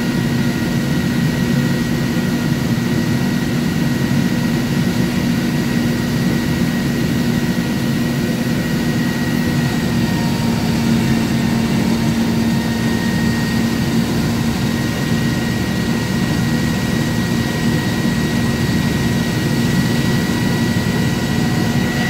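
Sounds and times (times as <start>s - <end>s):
fan blower rushing air: 0.0s - 22.0s
faint high whine: 4.1s - 22.0s.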